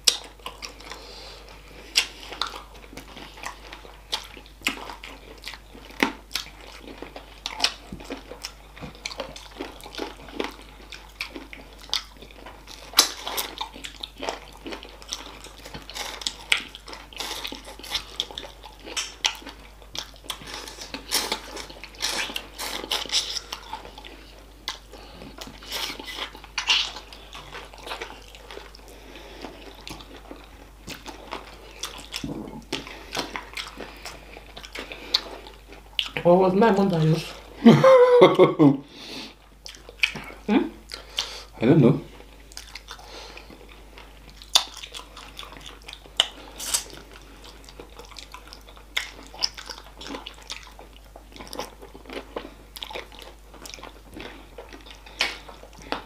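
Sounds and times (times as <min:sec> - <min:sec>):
wet chewing and lip-smacking: 0:00.0 - 0:36.4, 0:39.3 - 0:41.5, 0:42.1 - 0:56.0.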